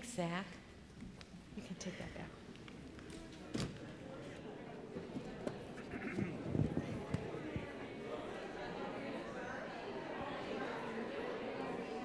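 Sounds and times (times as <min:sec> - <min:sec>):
congregation talking: 0:01.6 - 0:12.0.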